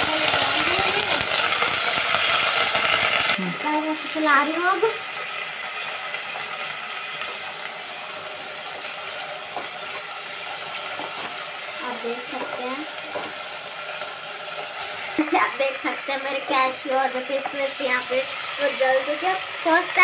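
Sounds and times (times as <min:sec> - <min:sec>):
food sizzling in hot oil: 0:00.0 - 0:20.0.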